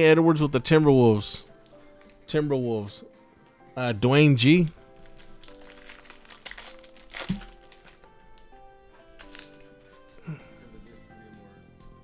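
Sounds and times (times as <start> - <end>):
quiet background music: 0.0 - 12.0
foil wrapper ripping and crinkling: 4.6 - 8.2, 9.2 - 10.2.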